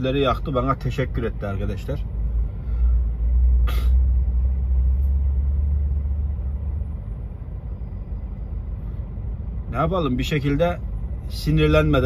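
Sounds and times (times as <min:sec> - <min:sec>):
lorry engines droning: 0:00.0 - 0:12.0.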